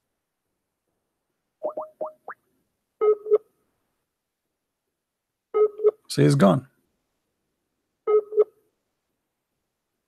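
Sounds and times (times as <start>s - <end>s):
rising electronic bloops: 1.6s - 2.4s.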